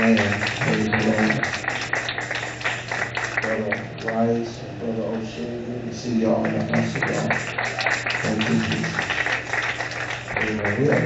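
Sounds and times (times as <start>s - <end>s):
congregation praying aloud: 0.0s - 4.3s, 6.2s - 11.0s.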